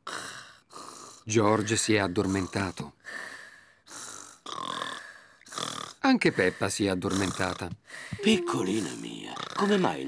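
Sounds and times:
cartoon piglet snoring: 3.9s - 6.0s, 7.1s - 10.0s.

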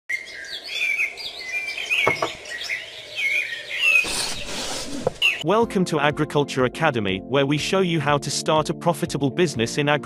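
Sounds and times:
songbirds chirping: 0.1s - 5.5s.

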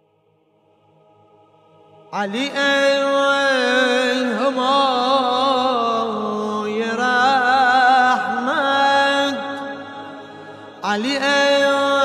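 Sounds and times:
man singing devotional chant: 2.1s - 12.0s.

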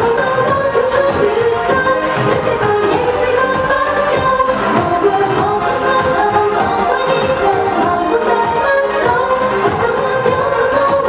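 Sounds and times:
pop song with singing: 0.0s - 11.0s.

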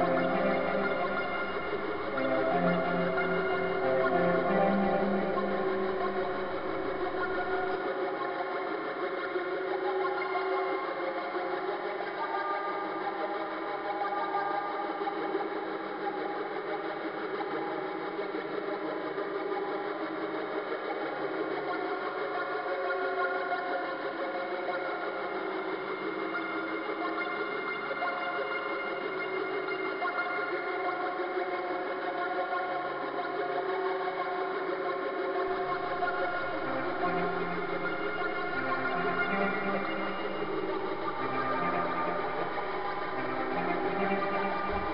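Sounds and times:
synthesizer buzzing drone: 0.0s - 7.8s
synthesizer drone: 0.0s - 8.0s, 35.5s - 44.9s.

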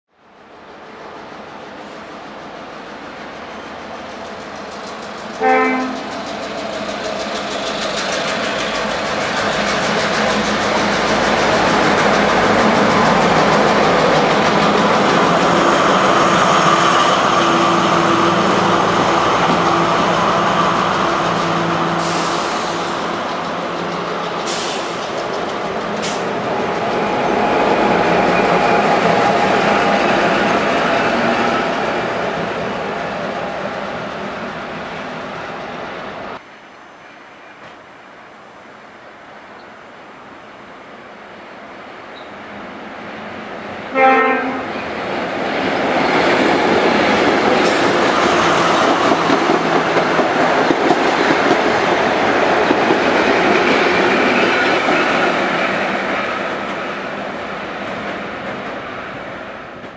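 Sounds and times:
train wheel rumble: 0.4s - 36.4s, 42.2s - 59.9s.

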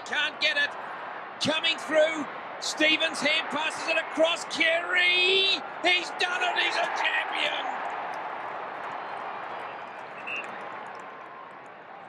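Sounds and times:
stadium crowd cheering: 0.0s - 12.0s.

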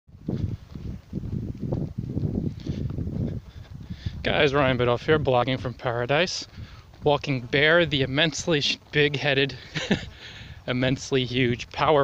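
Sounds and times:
footsteps on gravel: 0.1s - 12.0s.

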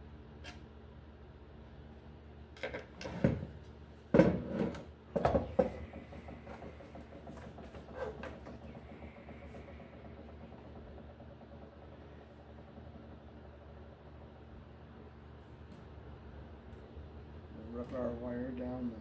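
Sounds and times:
tools knocking on wooden table: 4.1s - 8.6s.

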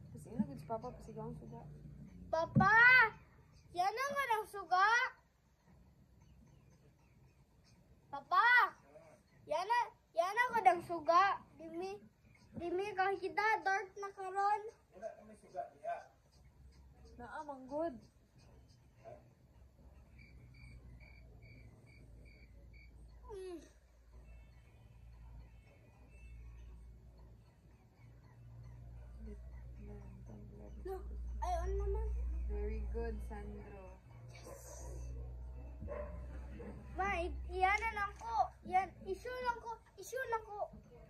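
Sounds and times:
faint background noise: 0.0s - 41.0s
small animal chirping: 3.0s - 35.7s
low steady hum: 18.0s - 38.2s.

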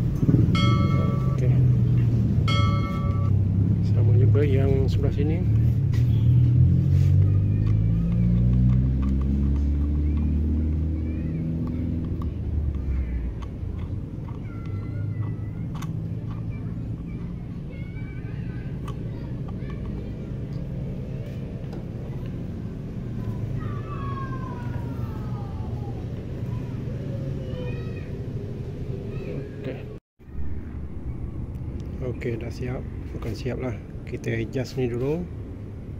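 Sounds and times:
vehicle engine revving: 0.0s - 29.1s
small clicks: 7.2s - 10.3s
steady low rumble: 10.5s - 35.9s.

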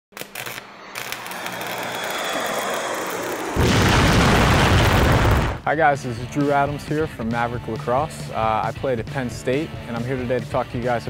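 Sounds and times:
rising noise sweep: 0.3s - 5.6s.

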